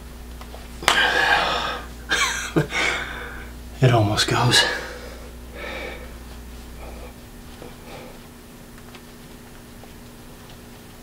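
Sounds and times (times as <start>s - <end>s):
man exhaling: 0.8s - 1.9s.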